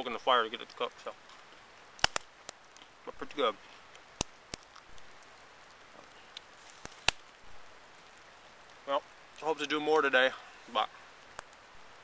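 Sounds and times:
light drizzle hiss: 0:00.0 - 0:12.0
sharp raindrop ticks: 0:00.5 - 0:10.1, 0:11.2 - 0:12.0.

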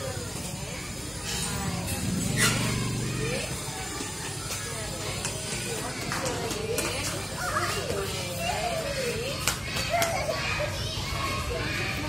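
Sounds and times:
adults' voices: 0:00.0 - 0:12.0
young children chattering: 0:00.0 - 0:12.0.

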